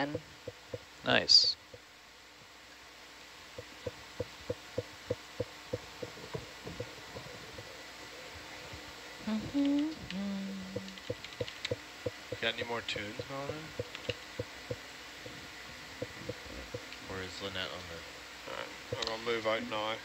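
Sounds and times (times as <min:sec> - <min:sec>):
soft regular clicking: 0:03.5 - 0:07.7, 0:10.8 - 0:12.5, 0:13.2 - 0:15.4, 0:18.9 - 0:19.2
person humming: 0:09.2 - 0:11.0.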